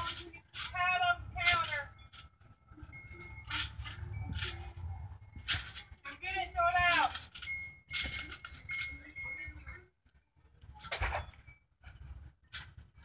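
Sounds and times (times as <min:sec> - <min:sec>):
squeaking springs: 0:00.0 - 0:06.2, 0:06.9 - 0:09.8, 0:10.8 - 0:13.0.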